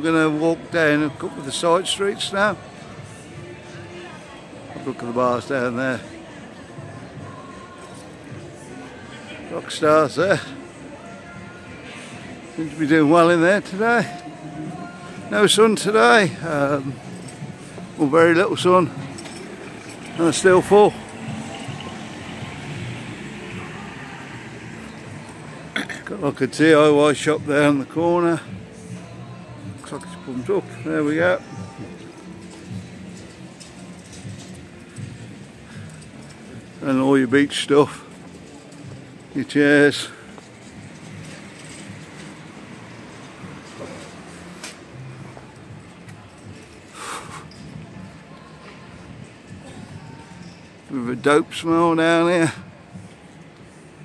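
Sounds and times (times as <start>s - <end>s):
faint voices of passers-by: 0.0s - 54.0s
general street noise: 0.0s - 54.0s
traffic hum: 0.0s - 54.0s.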